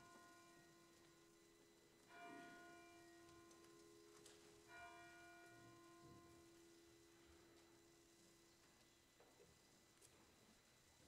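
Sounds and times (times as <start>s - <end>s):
faint bell-like notes: 0.0s - 8.1s.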